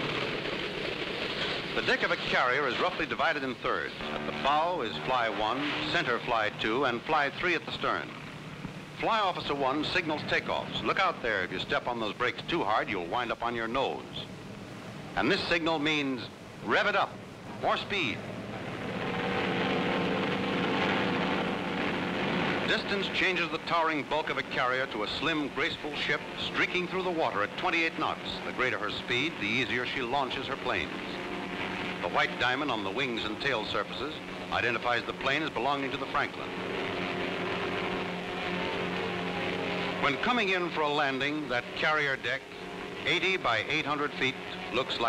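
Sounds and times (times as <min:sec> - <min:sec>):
propeller plane engine drone: 0:00.0 - 0:45.0.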